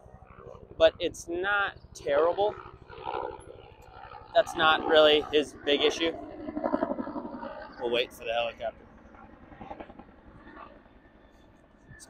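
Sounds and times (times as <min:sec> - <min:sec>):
helicopter low rumble: 0:00.0 - 0:12.0.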